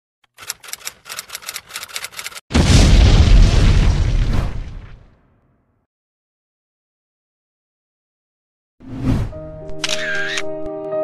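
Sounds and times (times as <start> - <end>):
loud explosion boom with rumble: 2.5 - 5.4.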